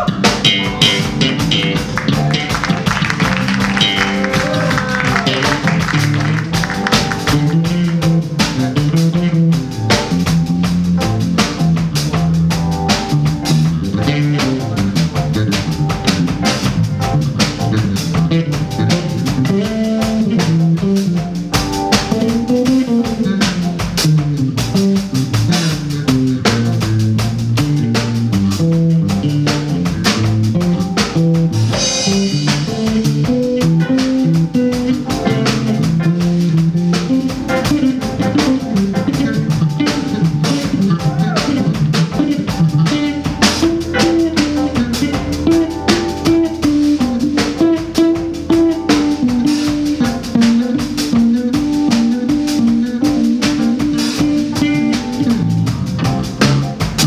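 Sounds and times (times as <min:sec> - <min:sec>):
live band playing instrumental: 0:00.0 - 0:57.0.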